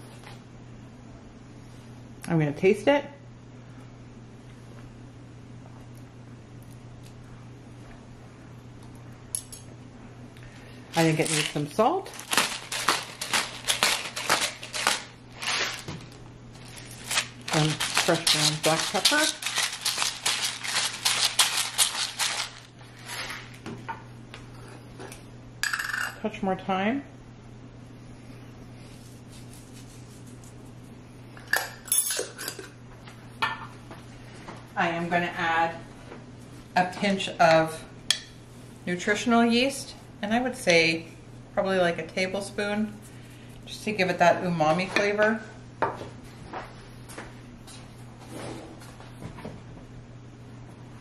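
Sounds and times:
low electrical hum: 0.0 - 51.0.

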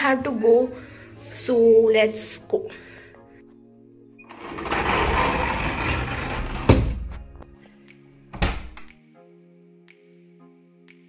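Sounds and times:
background music: 0.0 - 11.0
door thunks: 6.5 - 7.2, 8.3 - 8.9.

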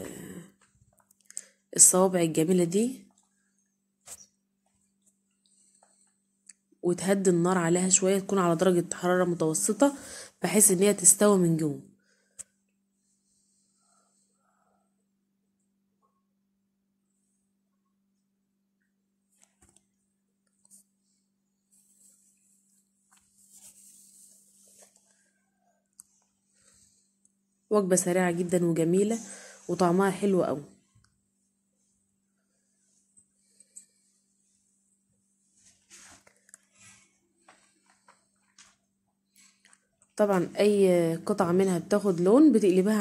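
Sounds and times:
faint steady hum: 0.0 - 43.0.

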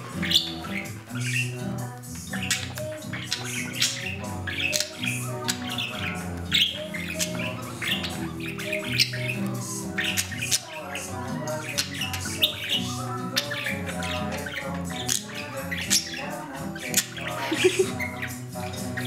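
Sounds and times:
background music: 0.0 - 19.0
budgerigar chirping and squawking: 0.0 - 19.0.

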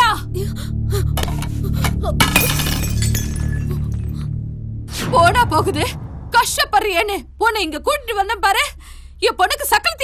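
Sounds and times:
low background music: 0.0 - 10.0
glass breaking on floor: 2.2 - 3.8.

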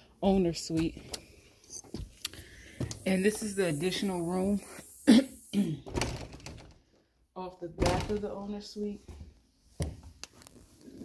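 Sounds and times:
footsteps: 1.8 - 4.9.

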